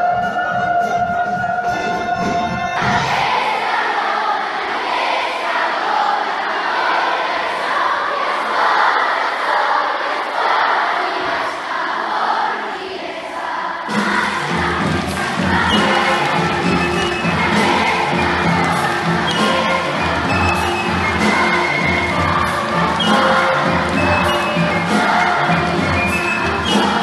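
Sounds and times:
crowd noise: 0.0s - 27.0s
live instrumental ensemble playing: 14.0s - 27.0s.

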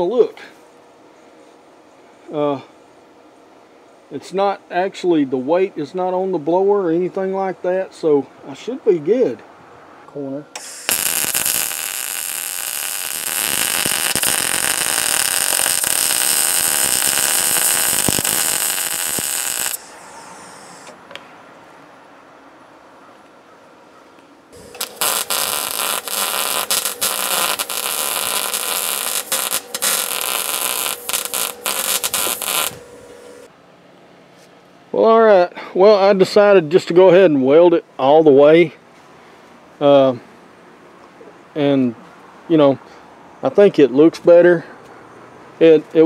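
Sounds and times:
welder arc crackling: 10.6s - 21.0s, 24.6s - 33.5s.

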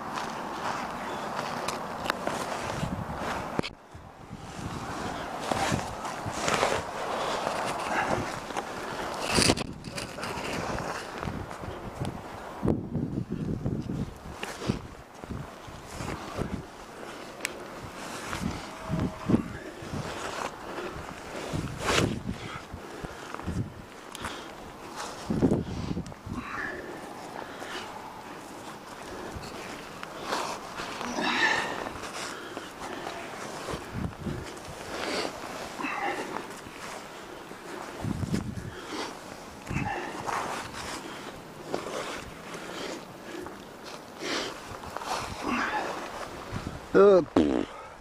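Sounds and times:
gloves scraping tree bark: 4.4s - 11.6s, 15.6s - 46.8s.

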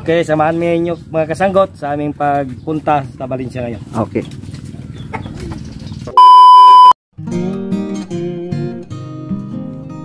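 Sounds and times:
loud test-tone beep: 6.2s - 7.0s.

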